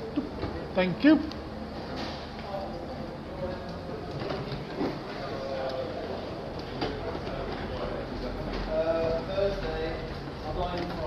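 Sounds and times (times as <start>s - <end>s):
steady background hum: 0.0s - 11.0s
faint chatter: 1.8s - 11.0s.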